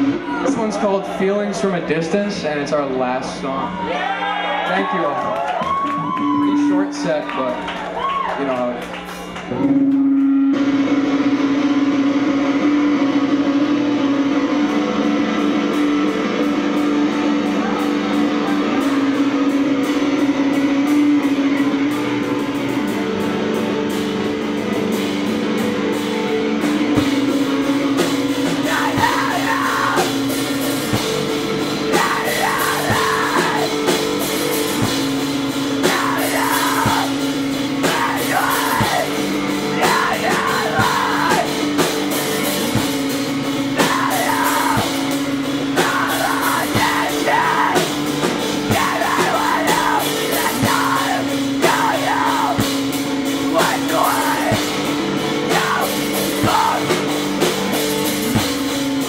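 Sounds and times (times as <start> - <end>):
distorted electric guitar: 0.0 - 4.4, 5.1 - 59.0
drums: 0.0 - 59.0
screamed vocals: 28.6 - 30.2, 31.9 - 33.8, 35.8 - 37.2, 37.8 - 39.2, 39.8 - 41.6, 43.8 - 45.0, 45.8 - 48.0, 48.7 - 52.7, 53.5 - 54.7, 55.5 - 57.0.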